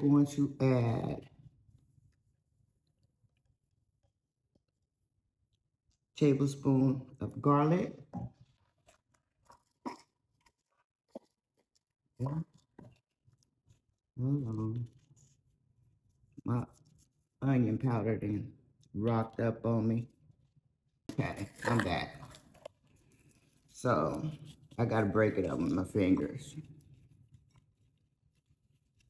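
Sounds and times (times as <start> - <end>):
woman speaking: 21.1 - 22.3
spoon scratching caked powder: 21.1 - 29.0.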